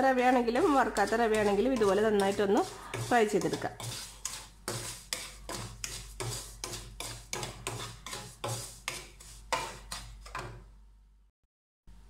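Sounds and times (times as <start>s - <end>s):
spatula scraping a pan: 0.2s - 10.7s.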